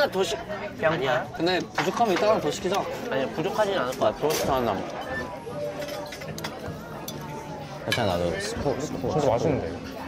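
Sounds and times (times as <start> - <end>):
cutlery clinking on plates: 1.5 - 8.3.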